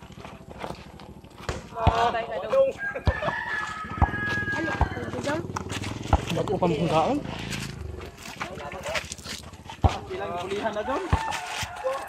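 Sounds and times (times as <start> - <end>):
men talking and calling out: 1.1 - 12.0.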